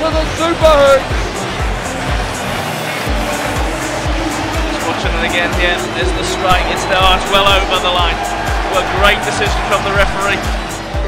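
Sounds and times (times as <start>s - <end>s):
backing music with thumping beat: 0.0s - 11.0s
stadium crowd noise: 1.2s - 11.0s.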